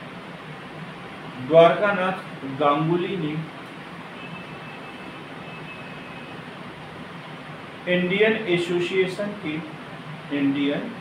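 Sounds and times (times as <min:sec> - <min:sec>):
faint high whine: 0:00.0 - 0:11.0
room background hum: 0:00.0 - 0:11.0.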